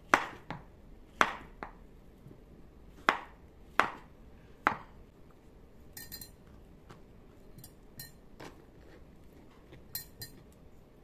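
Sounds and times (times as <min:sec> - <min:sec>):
light clink of glass: 0:06.0 - 0:06.4.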